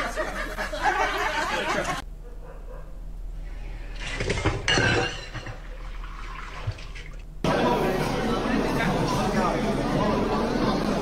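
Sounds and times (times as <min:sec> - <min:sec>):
people talking: 0:00.0 - 0:02.0, 0:07.5 - 0:11.0
pot clattering in sink: 0:04.0 - 0:07.2
water splashing in sink: 0:04.0 - 0:07.3.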